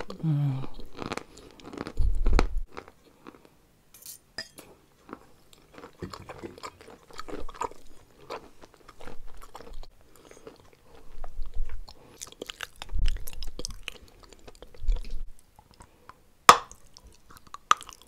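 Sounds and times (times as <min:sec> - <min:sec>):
crunchy chewing: 0:00.0 - 0:03.5, 0:05.0 - 0:16.0.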